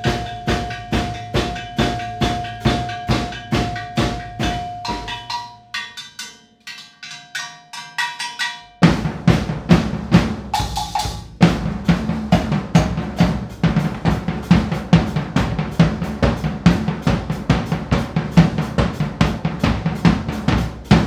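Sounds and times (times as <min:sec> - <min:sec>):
drum kit played with sticks: 0:00.0 - 0:21.0
ringing drum tone: 0:00.0 - 0:21.0
loud low drum hit: 0:08.8 - 0:21.0.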